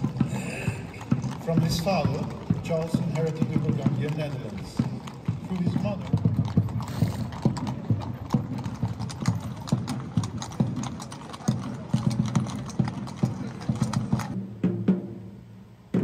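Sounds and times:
horse hooves on stone paving: 0:00.0 - 0:14.4.

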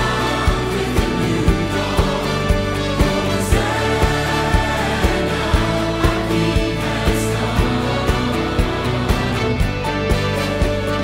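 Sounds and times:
man and woman singing: 0:00.0 - 0:09.7
choir singing: 0:00.0 - 0:11.0
orchestra playing: 0:00.0 - 0:11.0.

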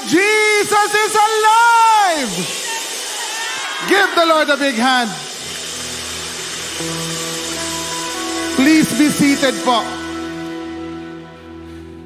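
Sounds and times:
audience applauding: 0:01.3 - 0:10.4
held music chords: 0:05.4 - 0:12.0.

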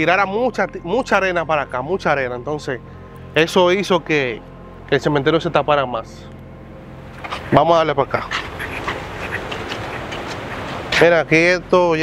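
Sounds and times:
steady outdoor background rush: 0:00.0 - 0:12.0
faint footsteps on sandy ground: 0:07.1 - 0:11.2.

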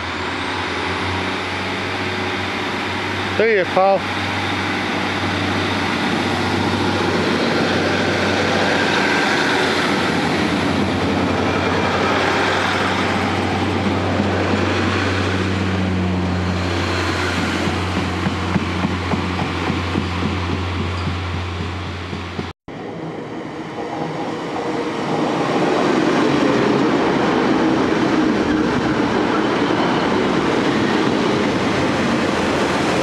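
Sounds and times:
diesel train engine hum: 0:00.0 - 0:33.0
train wheels clicking over rail joints: 0:16.6 - 0:22.5.

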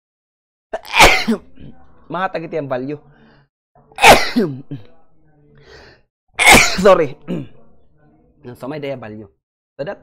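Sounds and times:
man sneezing: 0:06.4 - 0:06.9.

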